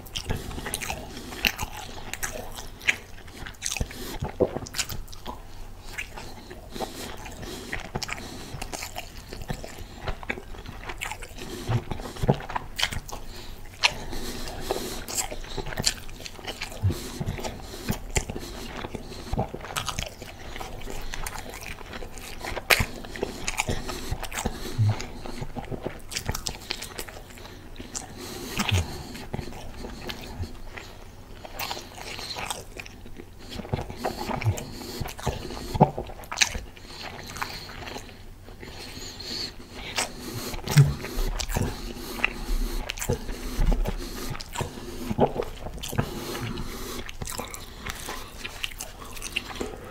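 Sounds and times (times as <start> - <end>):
close-up chewing: 0.0 - 49.9
mouth clicks and smacks: 0.0 - 49.9.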